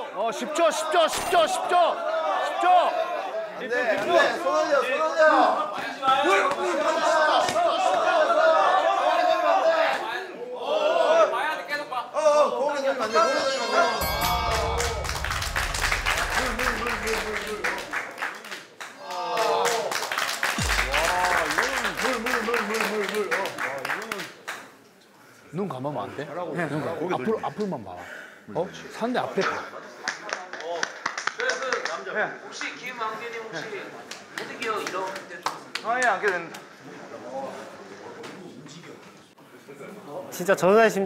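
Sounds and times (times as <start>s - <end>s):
background music: 14.0s - 18.0s, 20.6s - 22.7s
men's voices: 14.0s - 18.0s, 20.6s - 23.5s
small group clapping: 14.0s - 24.8s, 30.0s - 32.8s, 34.0s - 36.7s.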